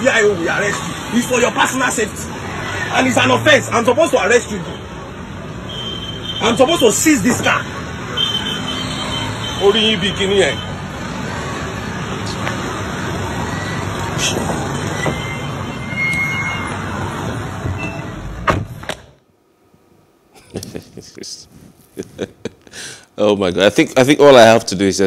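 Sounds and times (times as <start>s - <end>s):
road traffic noise: 0.0s - 25.0s
person speaking: 20.4s - 24.3s.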